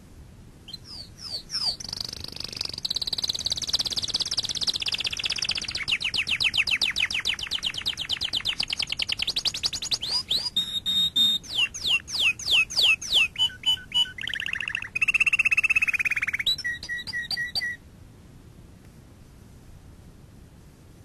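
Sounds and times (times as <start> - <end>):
bird trilling: 0.7 - 17.8.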